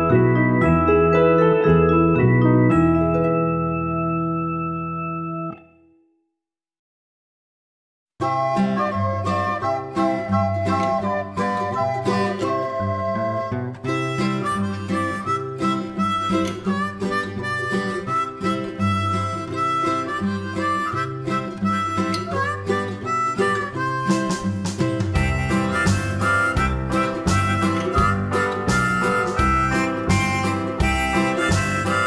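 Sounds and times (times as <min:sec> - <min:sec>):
harmonica and guitar music: 0:00.0 - 0:05.6, 0:08.2 - 0:32.0
steady regular beat: 0:24.1 - 0:32.0.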